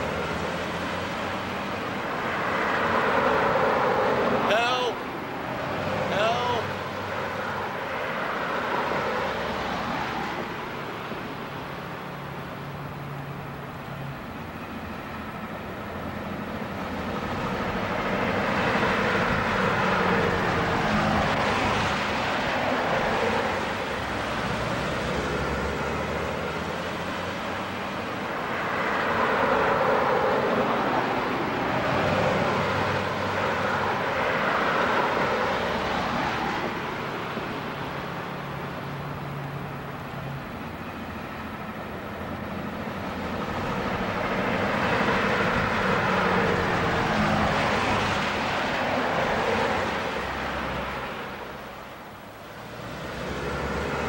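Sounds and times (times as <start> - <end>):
passing traffic: 0.0 - 54.0.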